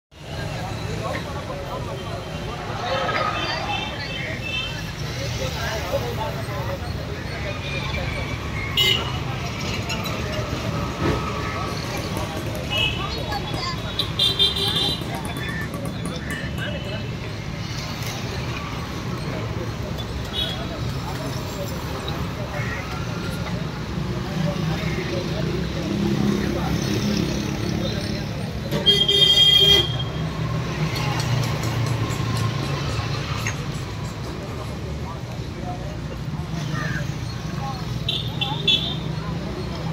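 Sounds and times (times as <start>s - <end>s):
street traffic rumble: 0.1s - 39.9s
people talking: 0.2s - 39.9s.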